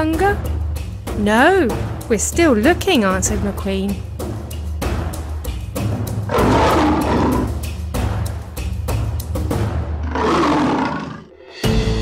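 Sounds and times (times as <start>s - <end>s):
background music: 0.0s - 12.0s
lion roaring: 6.3s - 7.6s, 10.0s - 11.4s.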